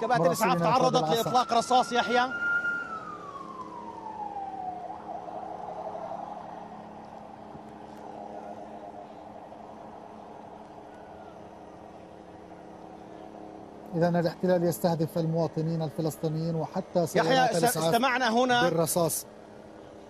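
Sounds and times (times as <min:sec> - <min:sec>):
ambulance siren wavering: 0:00.0 - 0:11.6, 0:17.2 - 0:18.8.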